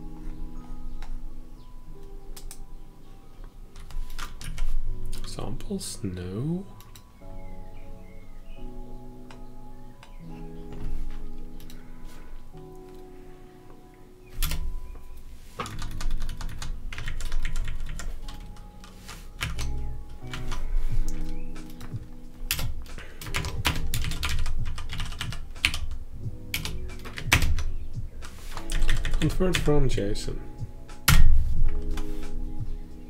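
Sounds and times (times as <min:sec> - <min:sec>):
music playing: 0:00.0 - 0:33.0
typing on computer keyboard: 0:15.6 - 0:29.7.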